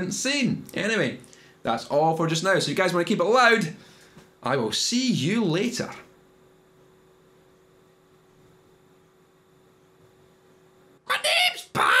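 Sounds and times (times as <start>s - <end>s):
faint steady hum: 0.0s - 12.0s
person uttering loudly: 11.1s - 12.0s.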